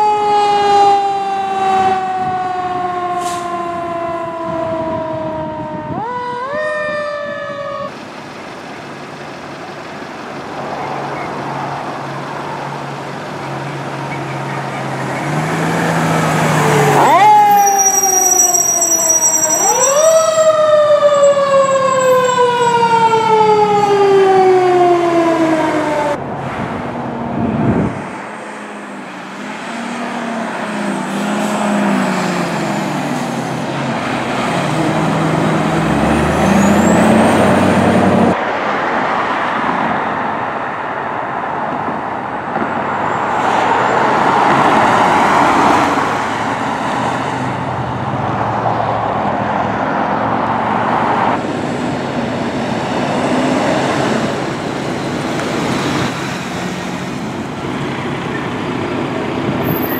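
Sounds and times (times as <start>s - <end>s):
fire engine siren winding: 0.0s - 7.9s, 16.4s - 26.2s
road noise: 0.0s - 59.9s
truck engines running: 0.0s - 59.9s.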